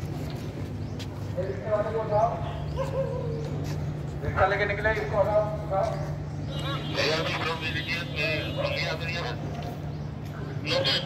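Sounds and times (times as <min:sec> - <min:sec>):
low hum of vehicles: 0:00.0 - 0:11.0
people talking: 0:06.7 - 0:09.4.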